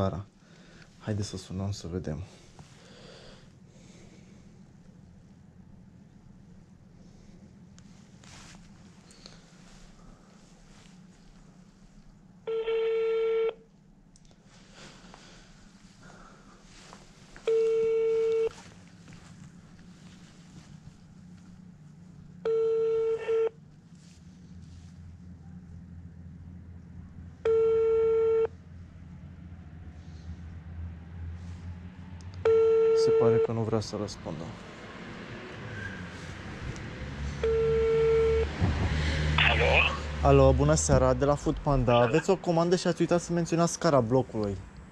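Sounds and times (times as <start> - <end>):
telephone ringback tone: 12.5 - 13.6.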